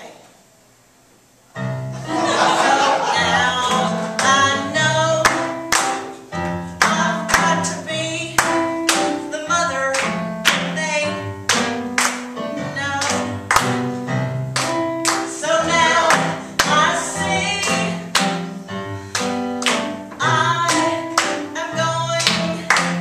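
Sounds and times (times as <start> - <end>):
instrumental accompaniment: 1.5 - 23.0.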